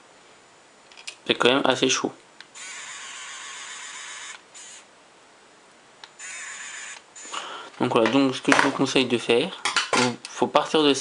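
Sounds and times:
small motor whirring: 2.5s - 4.9s, 6.2s - 7.4s.

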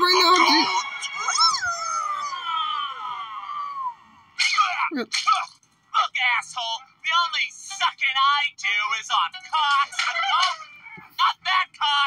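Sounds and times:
cartoon creature howling: 0.4s - 4.0s.

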